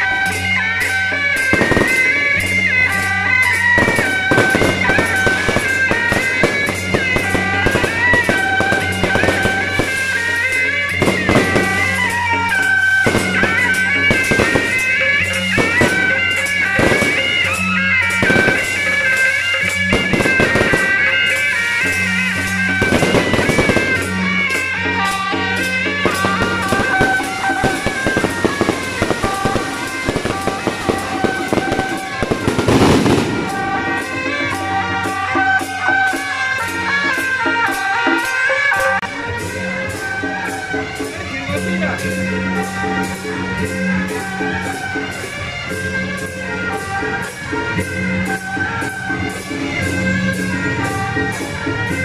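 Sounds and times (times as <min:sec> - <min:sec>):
fireworks cracking and crackling: 0:00.0 - 0:39.1
loud music with held melody: 0:00.0 - 0:52.0.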